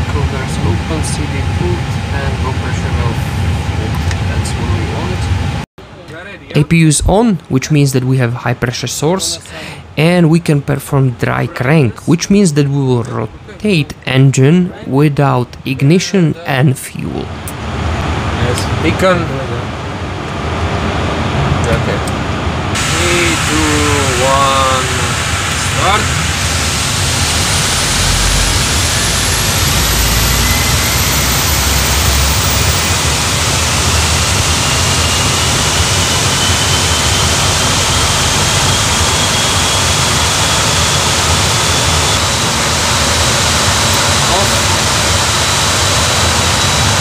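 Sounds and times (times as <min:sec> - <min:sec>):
low engine rumble: 0:00.0 - 0:07.5, 0:17.0 - 0:47.0
airflow hiss: 0:22.8 - 0:47.0.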